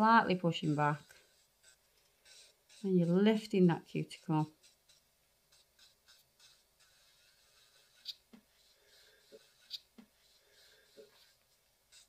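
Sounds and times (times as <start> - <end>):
electric nail file scratching: 0.0 - 11.4.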